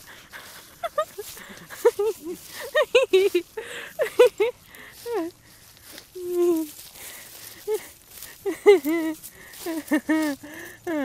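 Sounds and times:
high-pitched giggling: 0:00.0 - 0:05.4, 0:06.1 - 0:11.0.

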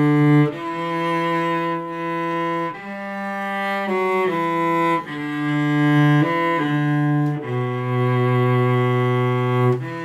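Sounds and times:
bowed cello melody: 0:00.0 - 0:10.0.

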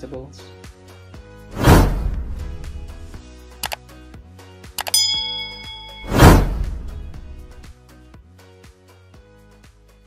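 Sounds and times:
background music: 0:00.0 - 0:10.0
loud whoosh: 0:01.5 - 0:03.2, 0:06.0 - 0:07.6
deep boom: 0:01.6 - 0:03.2
clicks: 0:04.8 - 0:05.7
bell ding: 0:04.8 - 0:06.7.

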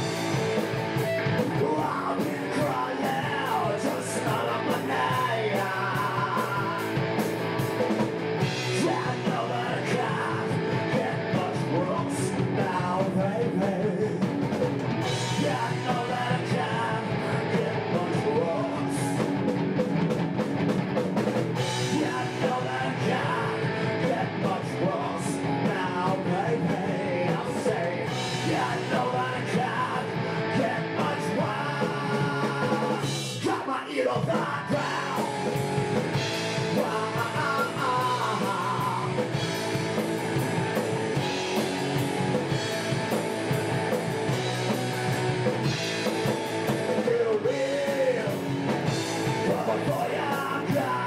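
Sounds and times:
man singing lead vocals: 0:00.0 - 0:07.6, 0:08.2 - 0:19.5, 0:21.6 - 0:42.8, 0:45.1 - 0:51.0
bass guitar: 0:00.0 - 0:51.0
drums: 0:00.0 - 0:51.0
electric guitar: 0:00.0 - 0:51.0.

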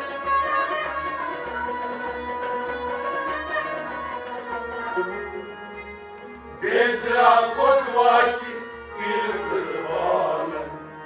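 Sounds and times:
harmonium melody: 0:00.0 - 0:11.0.

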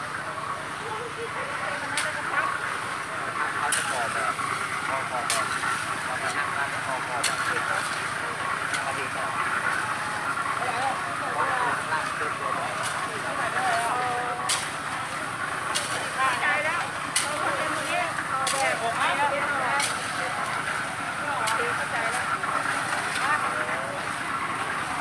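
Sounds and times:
concrete mixer turning: 0:00.0 - 0:25.0
gravel churning in mixer drum: 0:00.0 - 0:25.0.

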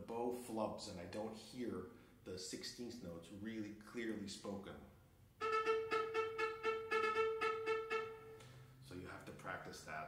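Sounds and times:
viola ricochet bow strokes: 0:05.4 - 0:08.6.

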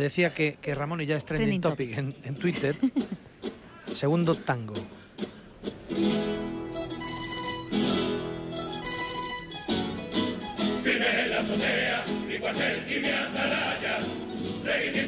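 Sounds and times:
guitars strumming chords: 0:05.2 - 0:15.0.

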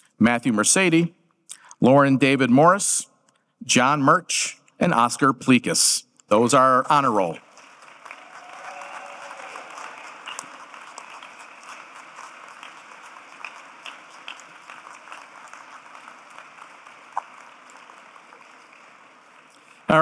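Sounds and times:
audience applauding: 0:07.2 - 0:20.0.

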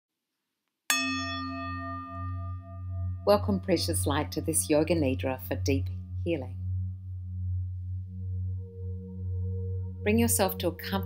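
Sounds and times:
singing bowl ringing: 0:00.9 - 0:11.0.

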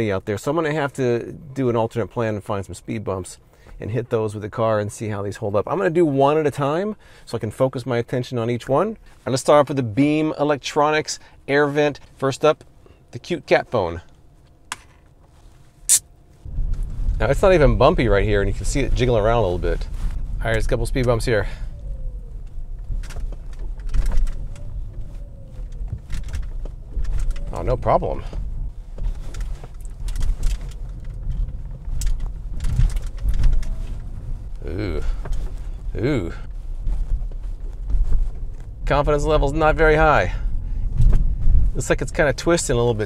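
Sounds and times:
road and engine rumble: 0:00.0 - 0:43.0
car driving rumble from inside: 0:28.4 - 0:39.1.

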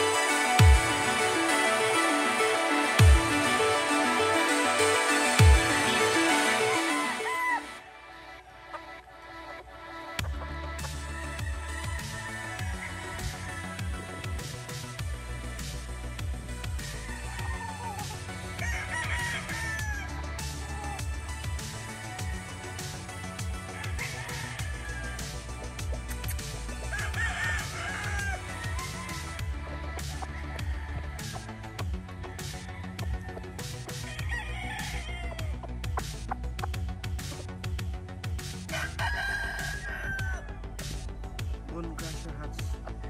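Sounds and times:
background music with a beat: 0:00.0 - 0:43.0
rooster crowing: 0:05.9 - 0:07.9, 0:17.0 - 0:21.0, 0:23.6 - 0:25.4, 0:26.9 - 0:29.1, 0:32.3 - 0:35.6, 0:38.7 - 0:40.6.

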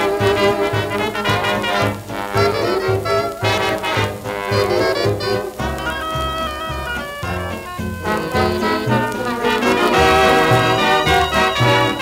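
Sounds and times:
old dance orchestra recording: 0:00.0 - 0:12.0.

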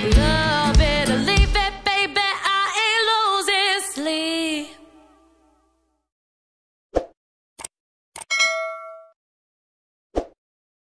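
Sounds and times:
notification bell ding: 0:08.3 - 0:09.2.

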